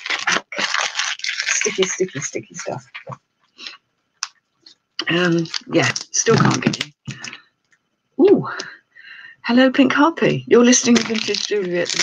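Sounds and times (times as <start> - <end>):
parcel rustling: 0.0 - 3.7, 10.7 - 12.0.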